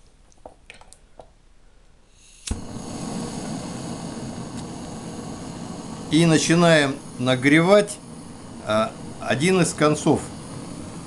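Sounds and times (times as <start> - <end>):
gas hissing: 2.0 - 11.0
torch flame hissing: 2.0 - 11.0
igniter click: 2.4 - 2.8.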